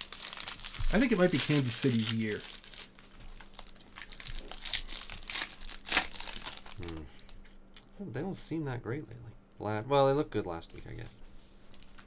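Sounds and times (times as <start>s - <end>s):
foil wrapper crinkling: 0.0s - 7.4s, 11.6s - 12.0s.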